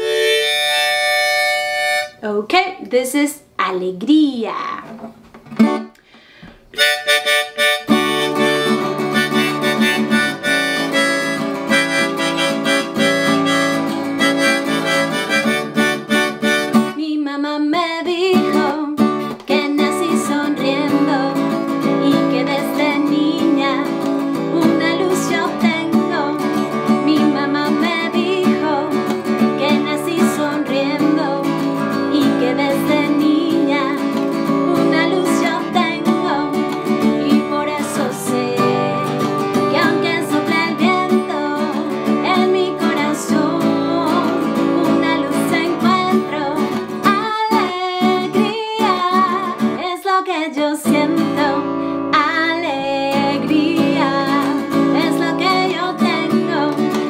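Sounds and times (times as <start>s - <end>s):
harmonica: 0.0s - 2.2s, 6.7s - 17.0s
strummed acoustic guitar: 4.8s - 6.0s, 6.8s - 17.0s, 18.2s - 49.9s, 50.8s - 57.0s
woman singing: 8.0s - 57.0s.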